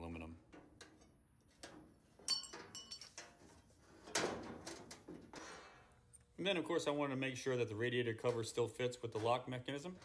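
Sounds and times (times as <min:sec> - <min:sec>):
metal sheet clinking and rattling: 0:00.5 - 0:05.9.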